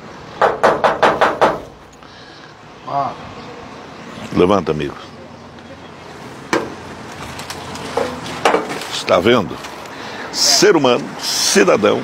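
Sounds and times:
sharp knocks: 0.4s - 1.7s, 7.9s - 8.8s.

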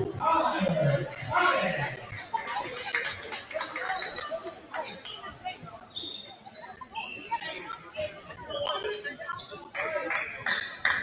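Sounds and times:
indistinct talking: 0.0s - 11.0s.

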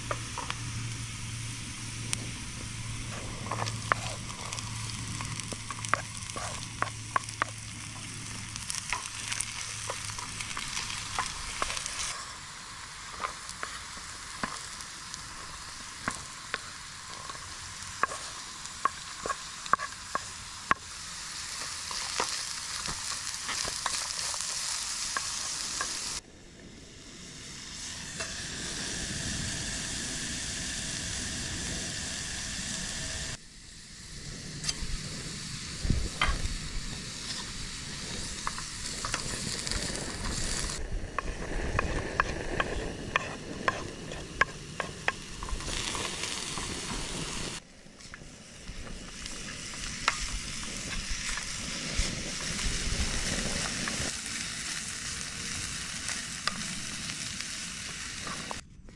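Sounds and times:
vegetables sizzling in a pot: 0.0s - 26.2s, 27.0s - 58.6s
wooden spatula scraping pot: 3.0s - 12.2s, 16.0s - 26.1s, 37.2s - 47.0s.

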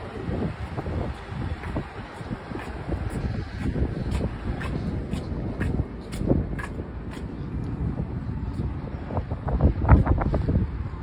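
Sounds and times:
wind buffeting microphone: 0.0s - 11.0s
faint footsteps on concrete: 0.3s - 10.7s.

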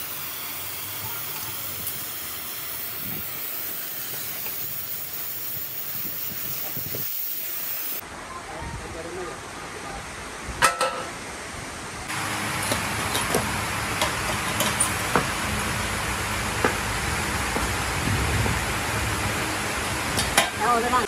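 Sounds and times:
workshop hiss: 0.0s - 8.0s, 12.1s - 21.0s
steel tubing clanking: 12.6s - 15.3s.

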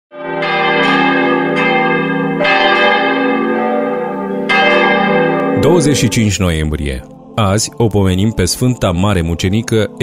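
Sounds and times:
church bells ringing: 0.1s - 7.8s.

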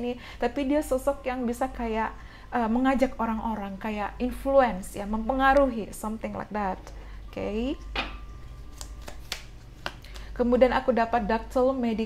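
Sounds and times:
paper cards flipping clicks: 8.7s - 10.3s.

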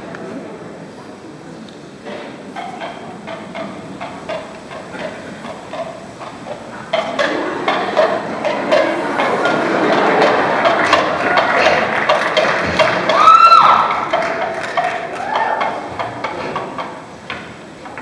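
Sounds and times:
crowd noise: 0.0s - 18.0s
coconut shell hoof clip-clops: 2.5s - 18.0s.

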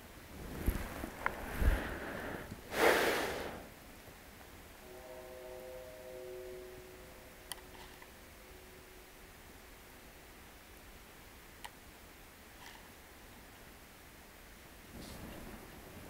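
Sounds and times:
faint steady multi-pitch tone: 4.7s - 12.4s.

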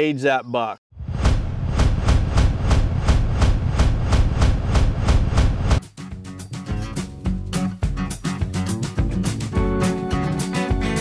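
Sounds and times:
heavy low rumble: 1.0s - 5.8s.

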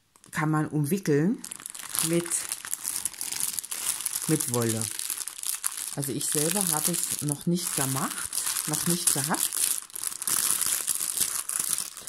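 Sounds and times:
plastic bag crinkling: 1.4s - 12.0s.

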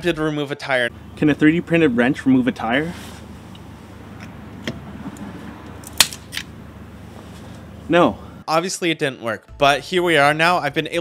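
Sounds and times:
loud sharp snap: 5.9s - 6.5s.

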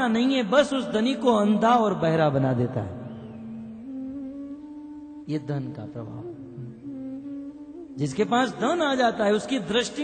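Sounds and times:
soft sustained instrumental music: 0.0s - 10.0s.

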